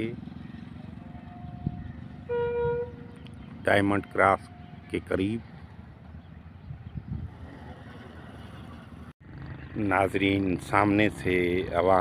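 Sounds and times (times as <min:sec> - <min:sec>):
train horn toot: 0:01.1 - 0:03.2.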